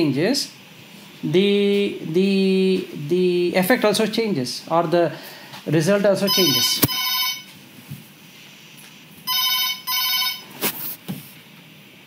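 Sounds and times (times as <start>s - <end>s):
electronic telephone ringing: 6.3s - 7.5s, 9.3s - 10.5s.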